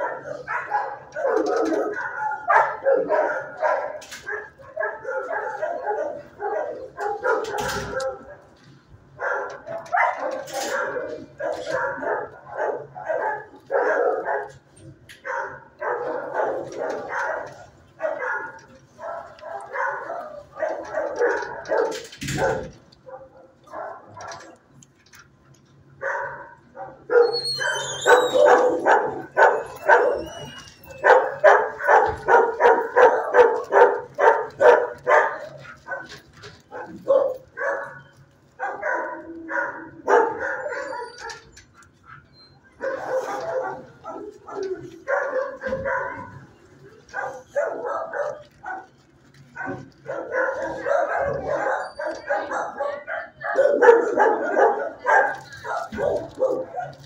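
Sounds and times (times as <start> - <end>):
dogs barking: 0.0 - 57.0.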